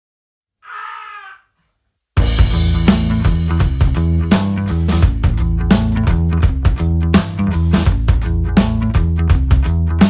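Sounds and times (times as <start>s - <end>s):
short high cry: 0.6s - 1.5s.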